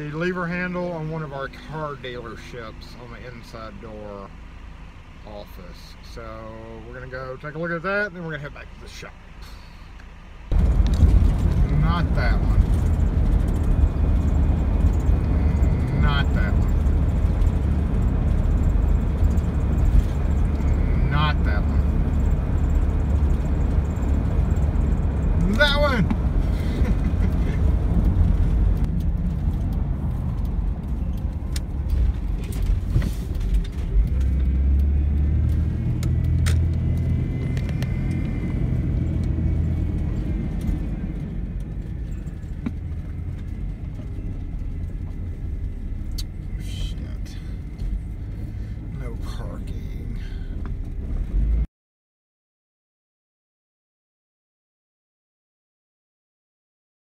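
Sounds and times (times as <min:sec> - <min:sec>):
car road and engine rumble: 0:00.0 - 0:51.7.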